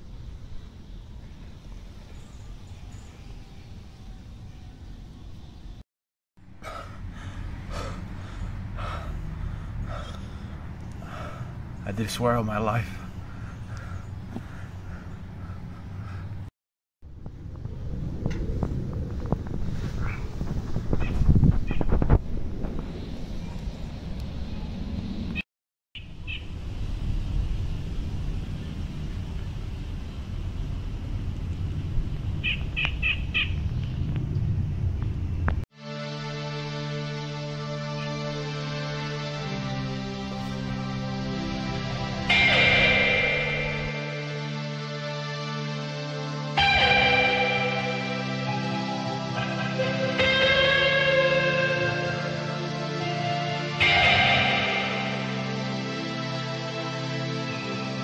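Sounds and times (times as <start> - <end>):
steady low rumble: 6.4 - 25.4, 26.0 - 35.6, 38.3 - 44.8
man gasping for breath: 6.6 - 11.6.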